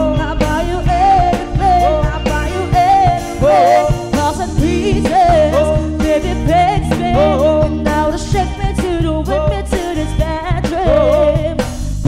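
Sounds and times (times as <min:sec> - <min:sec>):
woman singing into microphone: 0:00.0 - 0:11.7
bass line: 0:00.0 - 0:12.0
drum beat: 0:00.0 - 0:12.0.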